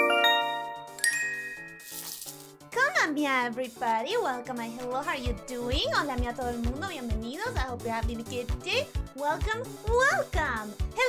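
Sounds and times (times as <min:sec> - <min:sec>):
bright bell-like chimes: 0:00.0 - 0:02.0.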